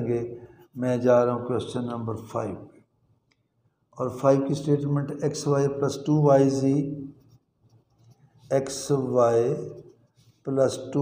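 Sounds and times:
person speaking: 0:00.0 - 0:02.7, 0:04.0 - 0:07.4, 0:08.5 - 0:11.0
pen scratching on paper: 0:06.5 - 0:10.5.

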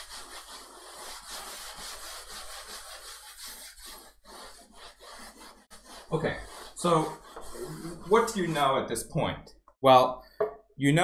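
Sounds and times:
eraser rubbing on blackboard: 0:00.0 - 0:08.7.

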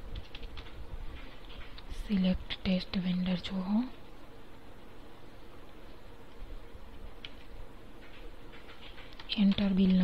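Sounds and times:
keyboard keys clicking: 0:00.2 - 0:00.8.

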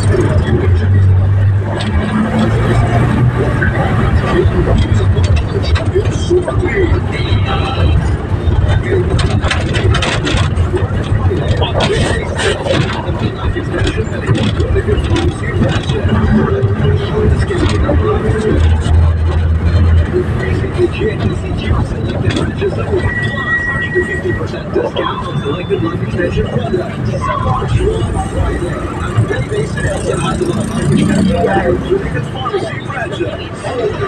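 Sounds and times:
people's voices: 0:00.0 - 0:34.0
vehicle engine and road noise: 0:00.0 - 0:34.0.

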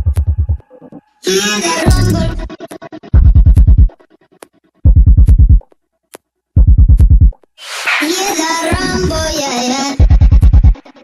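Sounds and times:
high sung vocal line: 0:01.2 - 0:02.9, 0:07.6 - 0:10.0
wash of hiss: 0:07.6 - 0:08.2.

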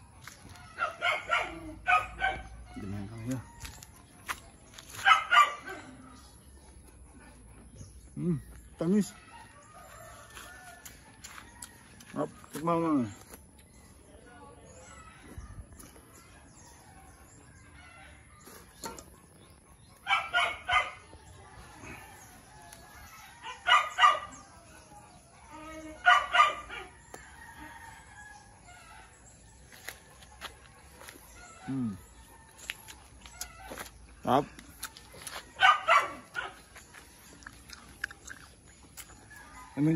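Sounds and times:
dog barking: 0:00.8 - 0:03.0, 0:05.0 - 0:06.2, 0:20.0 - 0:21.2, 0:23.4 - 0:24.4, 0:26.0 - 0:27.0, 0:35.6 - 0:36.7.

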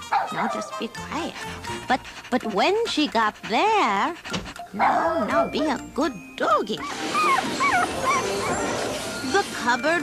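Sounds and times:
dog whining: 0:00.0 - 0:05.7, 0:06.8 - 0:10.0.

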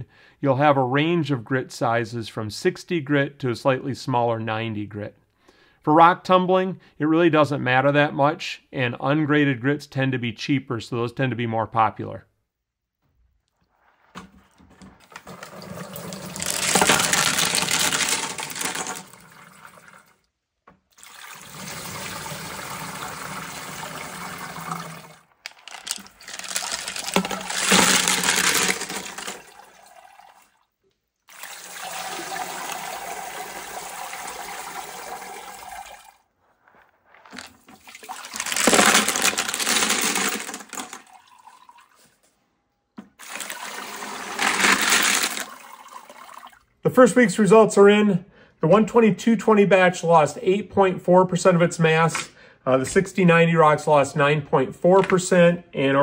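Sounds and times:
wet slurry and rocks pouring: 0:13.8 - 0:20.2, 0:20.9 - 0:30.6, 0:31.3 - 0:41.8, 0:43.2 - 0:46.0.

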